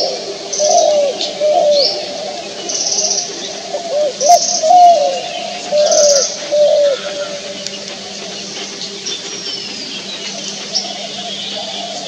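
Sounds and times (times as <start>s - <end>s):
dove cooing: 0.0s - 12.0s.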